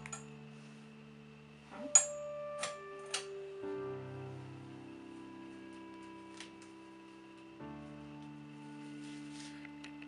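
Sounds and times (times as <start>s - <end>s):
soft held musical notes: 0.0s - 10.0s.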